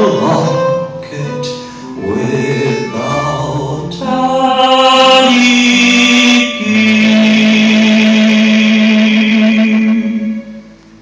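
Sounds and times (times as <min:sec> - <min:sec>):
man singing sustained notes: 0:00.0 - 0:10.6
double bass: 0:00.0 - 0:11.0
violin: 0:00.0 - 0:11.0.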